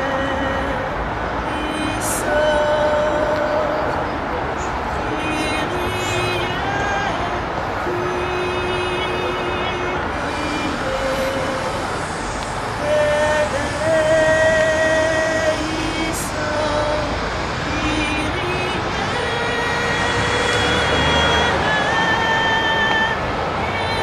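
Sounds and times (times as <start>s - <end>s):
road traffic hum: 0.0s - 24.0s
woman singing unaccompanied: 0.0s - 24.0s.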